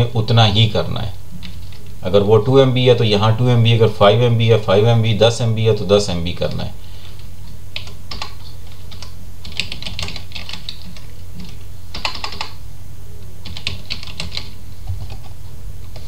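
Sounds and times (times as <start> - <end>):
steady low hum: 0.0 - 16.0
computer keyboard typing: 7.8 - 12.6, 13.4 - 16.0.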